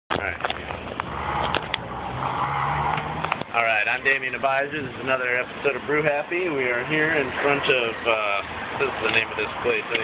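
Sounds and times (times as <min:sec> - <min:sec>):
vehicle passing by: 0:01.0 - 0:05.1.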